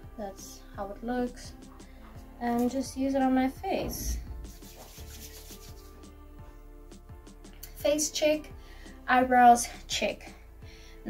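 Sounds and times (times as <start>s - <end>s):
quiet background music: 0.0s - 11.0s
palms rubbing together: 3.8s - 6.1s.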